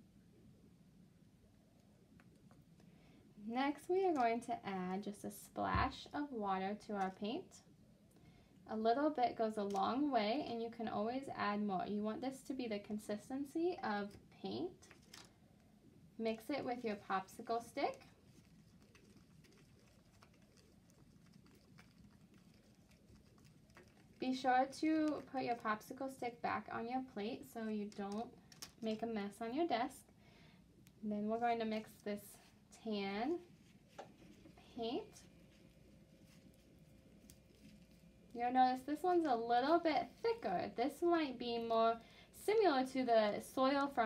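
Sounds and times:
stick stirring thick paint: 16.7s - 29.5s, 30.7s - 40.5s.

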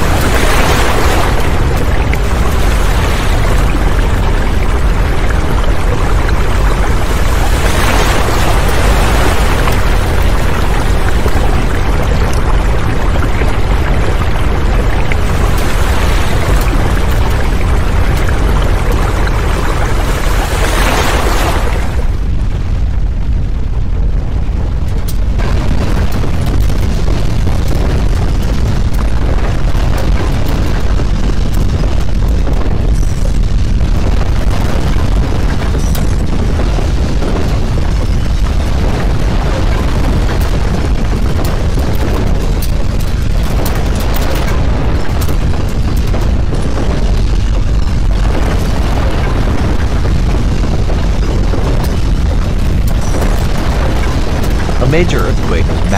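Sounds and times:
deep earthquake rumble: 0.0s - 55.9s.

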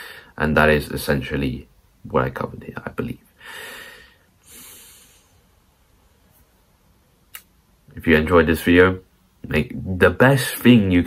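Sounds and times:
man breathing through nose: 3.4s - 5.5s.

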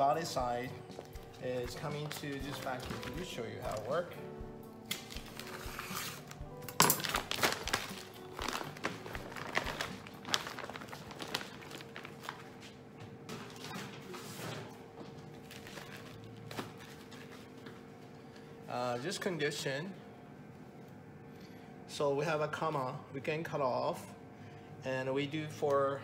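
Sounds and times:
background music: 0.0s - 12.2s
plastic bag crinkling: 1.2s - 4.1s, 4.9s - 12.7s, 15.4s - 17.3s.

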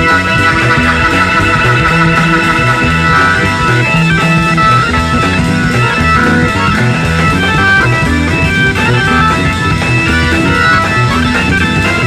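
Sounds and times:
bass line: 0.0s - 12.0s
guitar lines: 0.0s - 12.0s
rock band playing: 0.0s - 12.0s.

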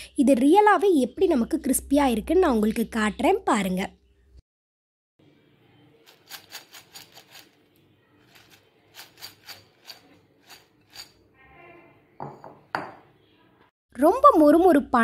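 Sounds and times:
corn kernels rattling in glass bowl: 6.0s - 7.6s, 8.2s - 11.2s.

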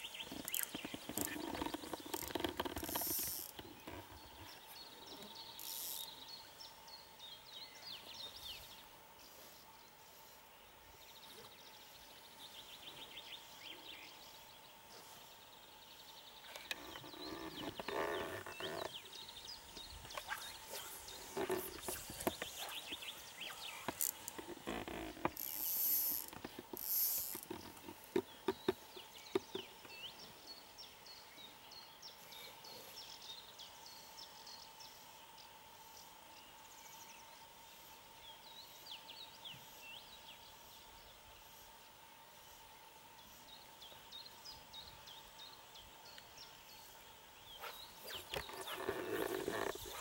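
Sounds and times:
small birds chirping: 0.0s - 35.0s, 43.2s - 50.0s
rustling: 47.6s - 50.0s.

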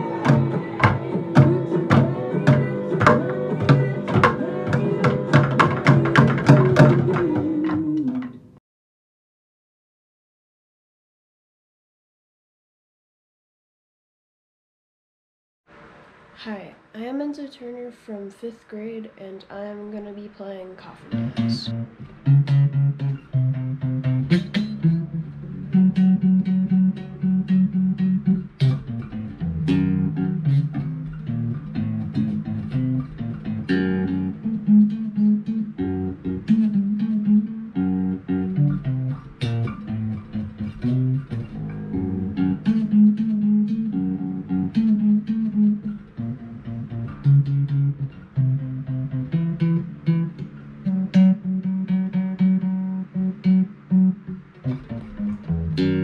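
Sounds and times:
electric bass guitar plucked: 0.0s - 8.4s, 21.1s - 56.0s.

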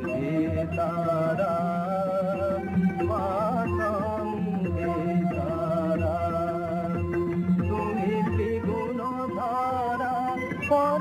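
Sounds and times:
person singing ornamented line: 0.0s - 11.0s.

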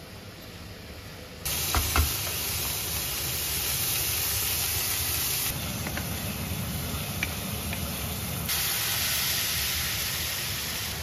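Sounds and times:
meat sizzling in hot oil: 1.5s - 11.0s.

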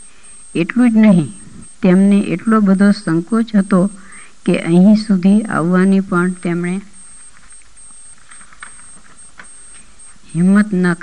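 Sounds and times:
steady background hiss: 0.0s - 11.0s
thin high-pitched whine: 0.0s - 11.0s.

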